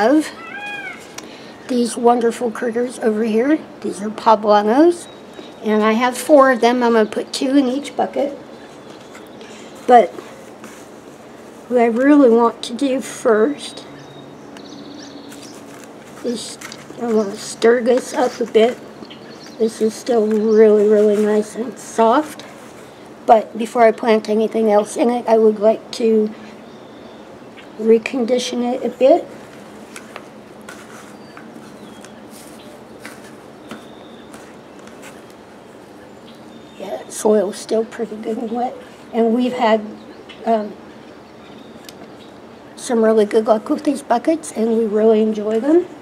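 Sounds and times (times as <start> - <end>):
small animal high trill: 0.4 - 1.1
hands rustling potting soil: 8.1 - 12.3, 15.3 - 18.8, 19.4 - 22.9, 28.8 - 36.0.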